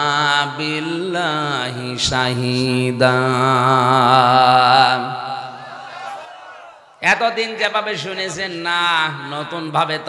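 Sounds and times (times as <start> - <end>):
man chanting recitation: 0.0 - 5.8, 7.0 - 10.0.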